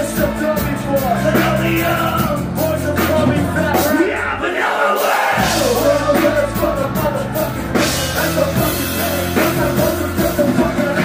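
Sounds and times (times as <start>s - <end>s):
live punk rock band playing: 0.0s - 11.0s.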